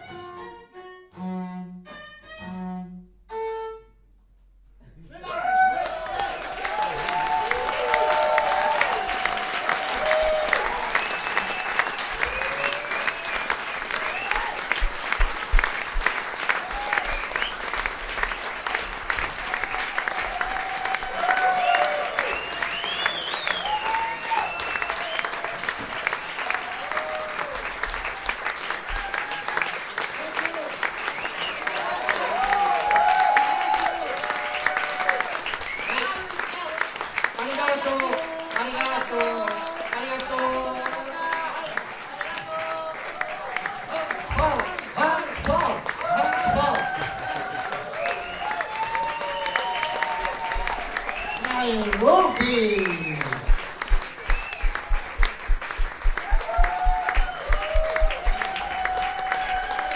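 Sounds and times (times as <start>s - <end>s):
audience applauding: 5.2s - 59.9s.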